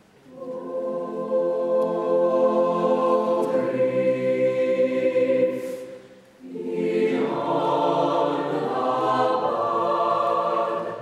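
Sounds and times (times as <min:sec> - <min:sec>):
mixed choir singing: 0:00.2 - 0:11.0.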